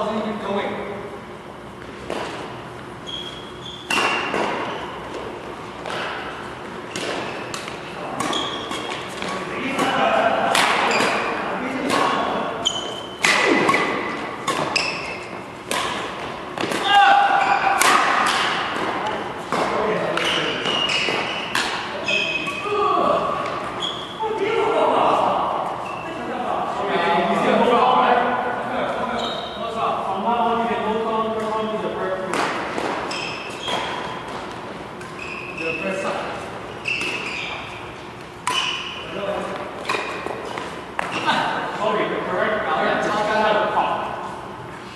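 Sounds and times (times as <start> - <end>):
racket striking shuttlecock: 3.8 - 4.7, 5.8 - 12.3, 13.0 - 21.9, 38.1 - 41.2.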